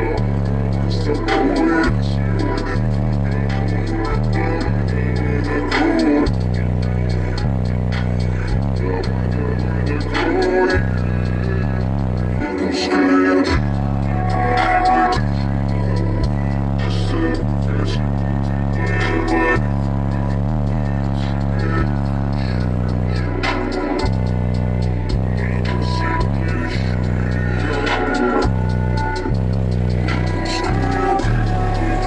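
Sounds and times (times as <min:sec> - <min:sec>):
loud bass-heavy music: 0:00.0 - 0:32.0.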